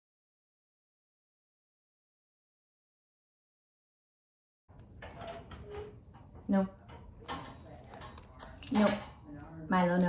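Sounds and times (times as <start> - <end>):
metal crate gate rattling: 5.0 - 9.3.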